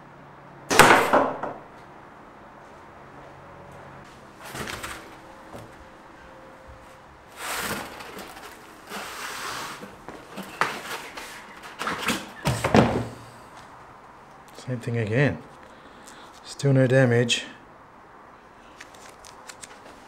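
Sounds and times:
arrow scraping out of foam target: 7.3s - 13.2s.

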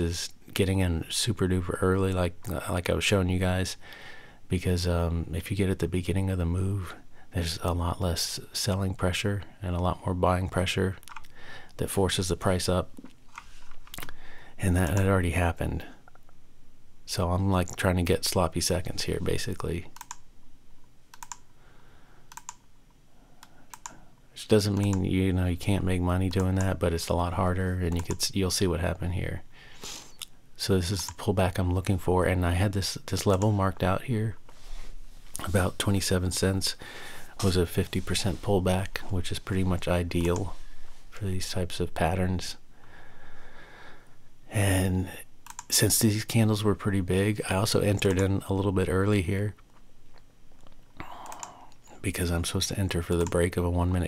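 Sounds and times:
computer keys clicking: 11.0s - 11.3s, 20.0s - 20.3s, 21.1s - 21.5s, 22.3s - 22.7s, 23.4s - 24.0s, 24.7s - 25.1s, 27.9s - 28.3s, 45.4s - 45.7s, 50.6s - 51.9s.

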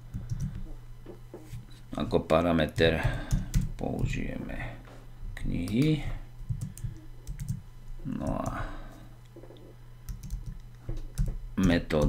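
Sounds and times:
keyboard typing: 0.1s - 0.8s, 2.7s - 4.0s, 5.6s - 7.6s, 9.5s - 12.0s.

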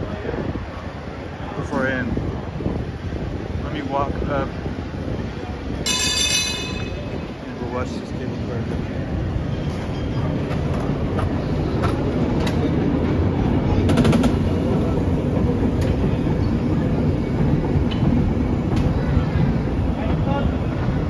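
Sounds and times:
cable car rumbling on rails: 0.0s - 21.0s.

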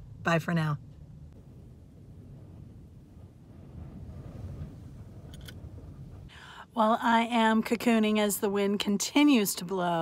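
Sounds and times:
faint low vehicle rumble: 0.0s - 9.2s.

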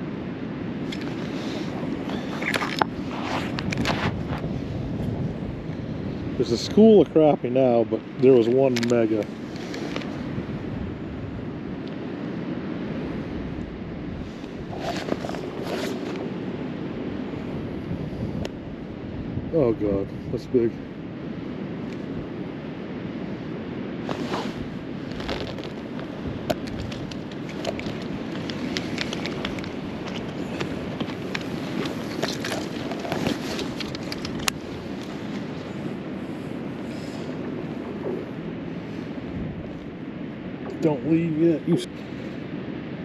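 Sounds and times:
wind over ice: 0.0s - 43.0s
ice clicks and crackles: 0.9s - 4.4s, 8.4s - 10.2s, 14.7s - 16.2s, 24.1s - 35.4s.

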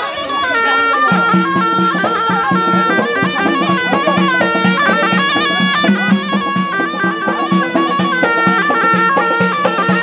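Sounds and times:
reedy wind instrument melody: 0.0s - 10.0s
steady drum beat: 1.0s - 10.0s.

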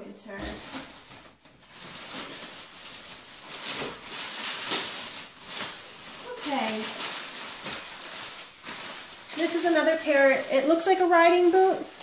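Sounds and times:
plastic packaging crinkling: 0.3s - 12.0s
rummaging in cardboard box: 0.3s - 12.0s.

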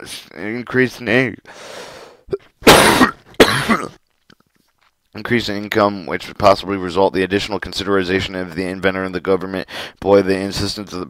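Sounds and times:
person coughing: 2.6s - 4.0s.

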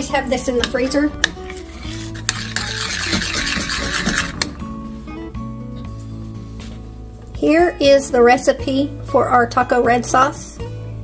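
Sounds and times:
background music: 0.0s - 11.0s
spoon scraping saucepan: 0.6s - 4.6s.

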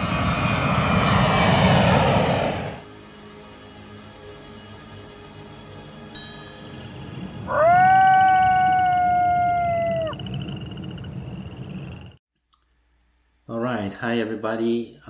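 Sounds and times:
wolf howling: 7.4s - 10.6s.

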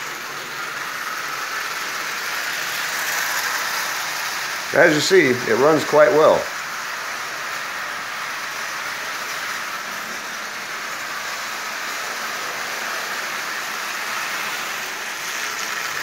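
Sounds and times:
toy train running on metal track: 0.0s - 16.0s.

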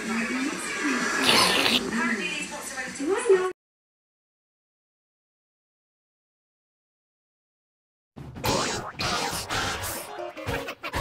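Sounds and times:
cartoon voices from television: 0.0s - 3.6s.

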